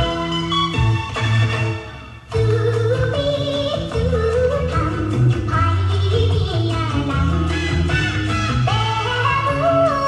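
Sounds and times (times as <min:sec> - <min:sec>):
accompaniment with steady bass line: 0:00.0 - 0:10.0
high voice singing: 0:02.3 - 0:10.0.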